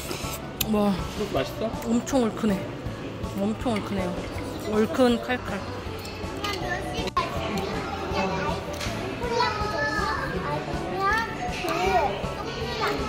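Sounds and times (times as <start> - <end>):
large room background noise: 0.0 - 13.0
child talking: 6.4 - 13.0.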